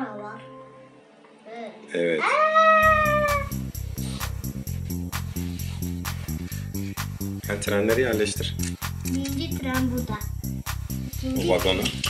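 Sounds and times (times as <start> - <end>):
cat meowing: 2.2 - 3.5
background music with steady beat: 2.8 - 12.0.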